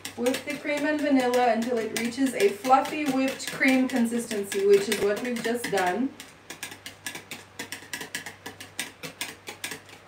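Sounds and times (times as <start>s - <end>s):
whisk clicking against plastic bowl: 0.0s - 10.0s.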